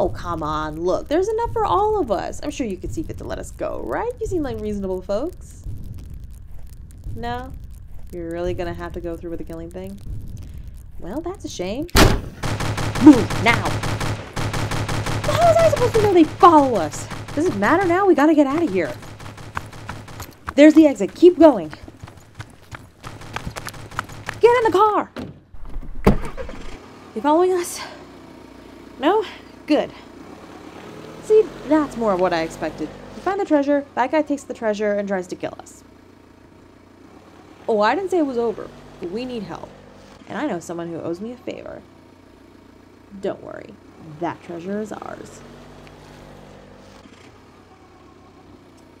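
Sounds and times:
low rumble: 0:00.0 - 0:24.6
car engine humming: 0:00.0 - 0:49.0
car door slamming shut: 0:12.0 - 0:12.4, 0:25.2 - 0:26.8
car door opening click: 0:25.2 - 0:26.8.

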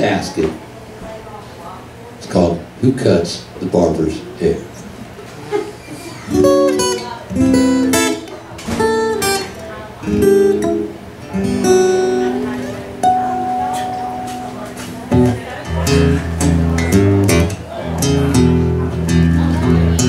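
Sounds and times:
acoustic guitar chords: 0:06.3 - 0:20.0.

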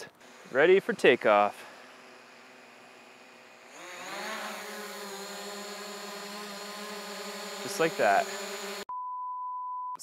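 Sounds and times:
drone propellers humming: 0:00.2 - 0:08.9.

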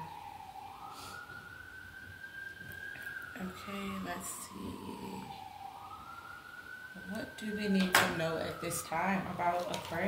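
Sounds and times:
police siren wailing: 0:00.0 - 0:10.0.

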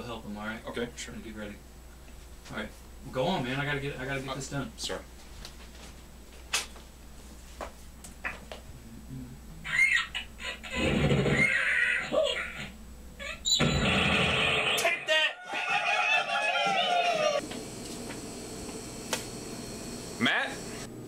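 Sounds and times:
cartoon bird cries and squeals: 0:09.6 - 0:13.6.

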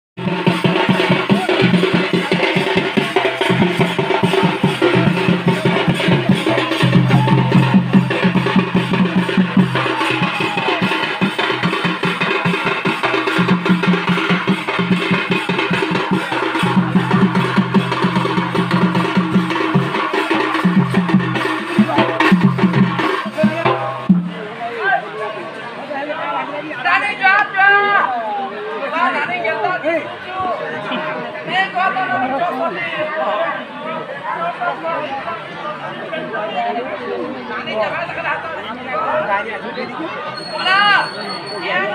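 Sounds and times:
barrel drum beating: 0:00.2 - 0:24.6
frame drum beating: 0:00.2 - 0:24.6.

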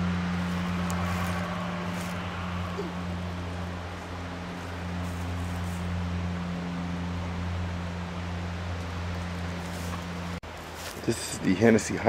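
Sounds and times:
low hum: 0:00.0 - 0:10.8.

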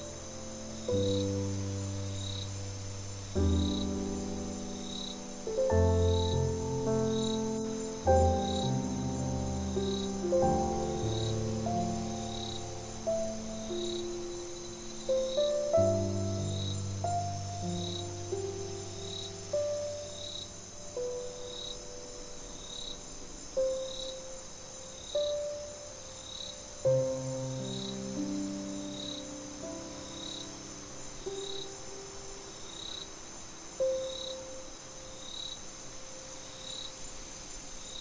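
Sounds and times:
slow solo piano notes: 0:00.0 - 0:22.9
cricket chirps: 0:00.0 - 0:38.0
crickets trilling: 0:00.0 - 0:38.0.

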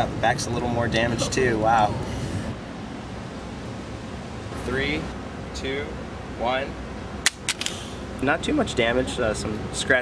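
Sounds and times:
steady low background noise: 0:00.0 - 0:10.0.

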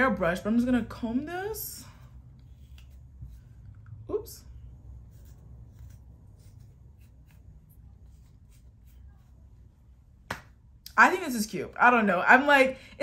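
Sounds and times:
low room rumble: 0:00.0 - 0:13.0
comb working through hair: 0:00.2 - 0:10.2.

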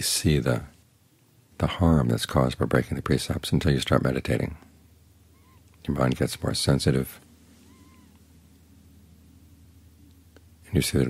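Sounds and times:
low room hum: 0:00.0 - 0:11.0
faint short animal call: 0:05.3 - 0:05.7, 0:07.5 - 0:08.2.

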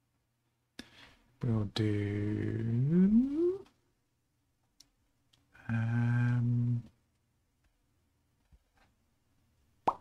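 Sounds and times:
man humming: 0:01.6 - 0:03.7, 0:05.6 - 0:07.0.

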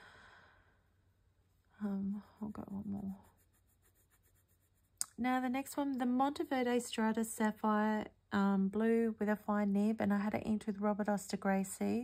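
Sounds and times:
fountain pen scratching on paper: 0:02.7 - 0:05.0.

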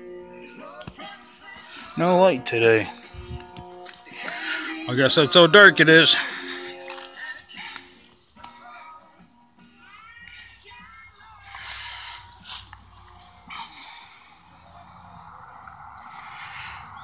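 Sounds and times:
steady high hiss: 0:00.0 - 0:17.0.

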